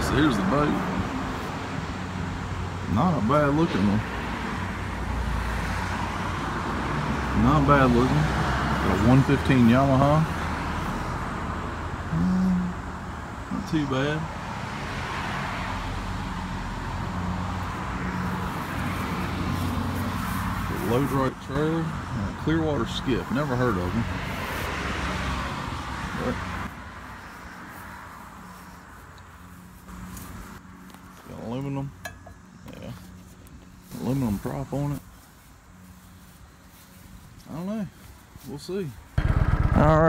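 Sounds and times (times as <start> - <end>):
road noise: 0.0 - 40.0
vehicle engine hum: 0.0 - 40.0.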